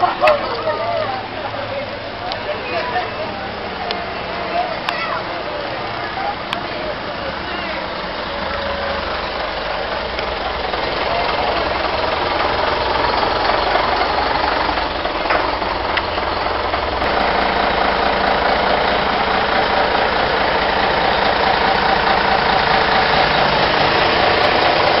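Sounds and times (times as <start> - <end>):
bus diesel engine running: 0.0 - 25.0.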